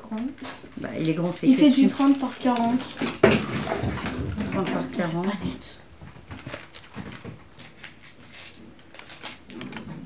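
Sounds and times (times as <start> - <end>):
dog playing with toy: 0.4 - 10.0.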